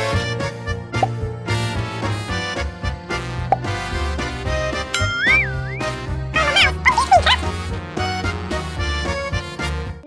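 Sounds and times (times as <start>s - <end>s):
playful background music: 0.0s - 10.0s
wavering whistle-like tone: 5.0s - 5.9s.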